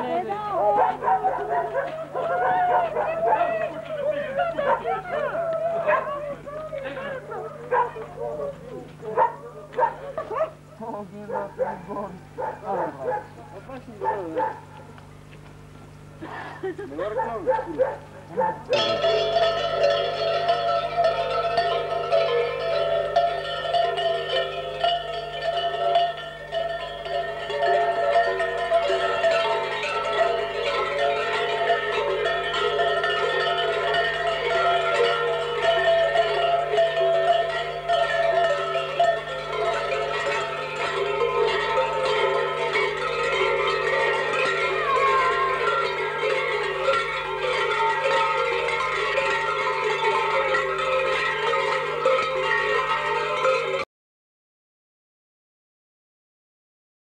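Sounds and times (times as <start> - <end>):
large metal bells clanging: 0.0 - 15.3, 15.9 - 53.9.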